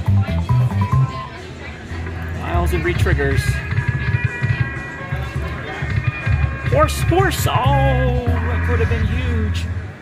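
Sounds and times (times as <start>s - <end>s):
slot machine music: 0.0s - 10.0s.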